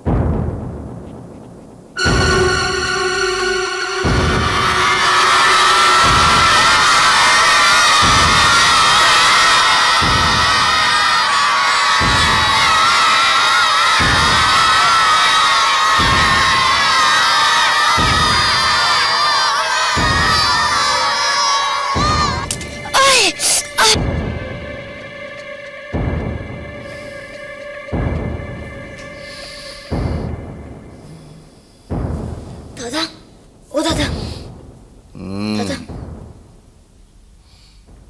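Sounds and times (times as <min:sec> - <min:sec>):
low pulsing beat: 0:00.0 - 0:37.0
crowd shouting and cheering: 0:02.0 - 0:29.2.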